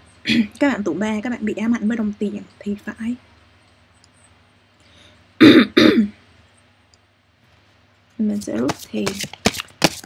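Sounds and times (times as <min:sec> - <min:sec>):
person clearing throat: 0:05.4 - 0:06.2.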